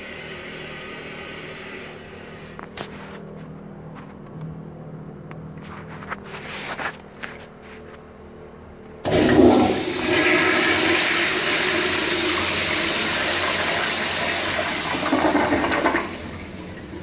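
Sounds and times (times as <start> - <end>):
toilet flushing: 0.0 - 2.6, 9.0 - 17.0.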